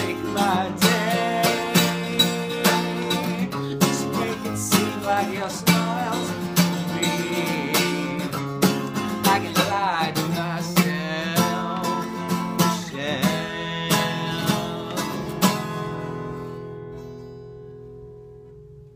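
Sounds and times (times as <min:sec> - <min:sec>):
man singing: 0:00.0 - 0:16.0
acoustic guitar strumming: 0:00.0 - 0:18.9.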